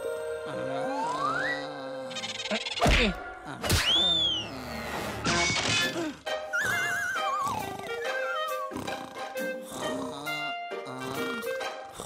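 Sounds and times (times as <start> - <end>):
cartoon whacks: 2.8 - 4.4
whistling glide: 3.8 - 4.5.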